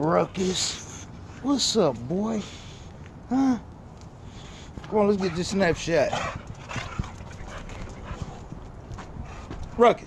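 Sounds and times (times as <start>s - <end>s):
dog nails ticking on concrete: 2.9s - 10.0s.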